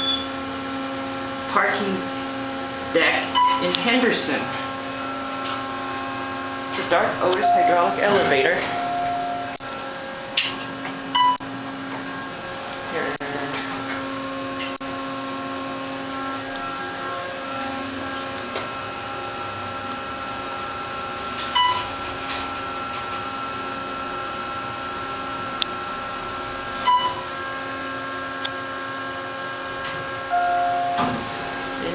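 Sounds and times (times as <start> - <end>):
elevator electrical hum: 0.0 - 31.9
long tone: 7.3 - 9.6, 30.3 - 31.2
short beeps: 7.4 - 8.0, 8.6 - 9.6, 26.8 - 27.2, 30.3 - 31.0.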